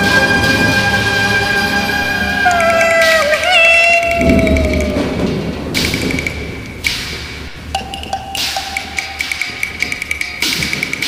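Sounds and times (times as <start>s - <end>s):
woodblock clacking: 2.4s - 11.0s.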